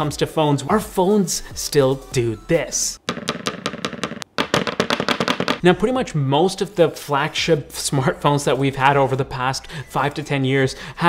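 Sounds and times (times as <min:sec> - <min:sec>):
phone clacking against desk: 0:03.1 - 0:05.6.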